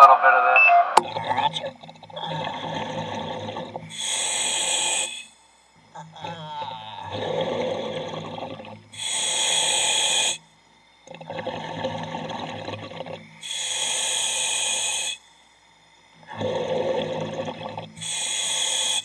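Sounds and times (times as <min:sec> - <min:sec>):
bubbling rush: 0:01.0 - 0:04.1, 0:07.1 - 0:09.9, 0:11.1 - 0:13.8, 0:16.3 - 0:18.8
diver breathing through regulator: 0:02.2 - 0:05.6, 0:07.0 - 0:10.6, 0:11.2 - 0:15.4, 0:16.2 - 0:19.0.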